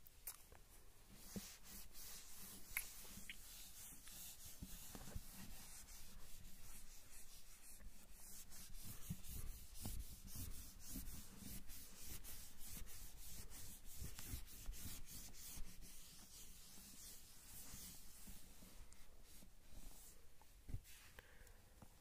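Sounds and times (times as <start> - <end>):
eraser rubbing on whiteboard: 1.1 - 20.2.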